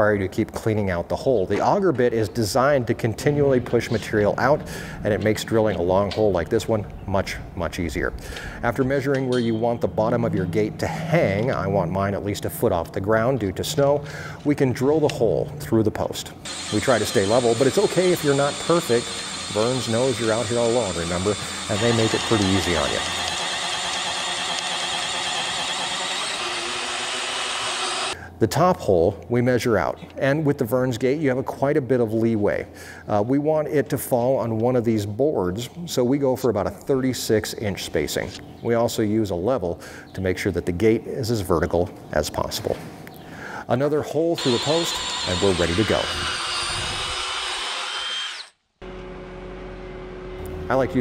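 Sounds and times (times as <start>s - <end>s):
power drill boring through wood: 16.5s - 28.2s, 44.4s - 48.6s.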